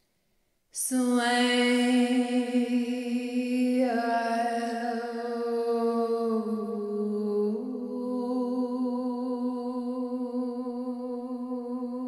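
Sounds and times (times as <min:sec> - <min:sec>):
woman singing wordless tones: 0:00.8 - 0:12.0.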